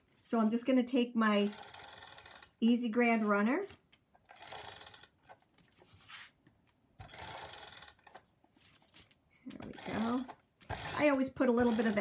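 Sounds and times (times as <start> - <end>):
tape runner ratcheting zip: 1.4 - 2.6, 4.2 - 5.4, 7.0 - 8.3, 9.6 - 12.0.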